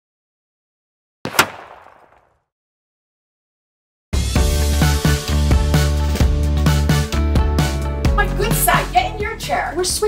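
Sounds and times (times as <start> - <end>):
sudden bang: 1.3 - 2.3.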